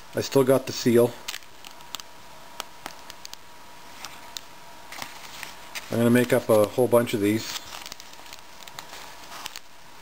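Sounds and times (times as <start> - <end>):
plastic bag crinkling and rustling: 1.2 - 2.1, 2.8 - 9.8.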